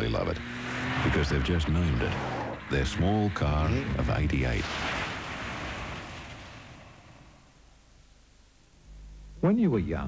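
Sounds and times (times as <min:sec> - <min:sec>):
car splashing through water: 0:00.4 - 0:07.4.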